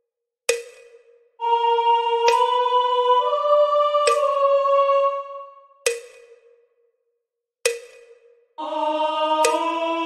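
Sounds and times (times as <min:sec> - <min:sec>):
sharp metronome clicks: 0:00.5 - 0:01.2, 0:02.2 - 0:02.6, 0:04.0 - 0:04.4, 0:05.8 - 0:06.6, 0:07.7 - 0:08.4, 0:09.4 - 0:09.7.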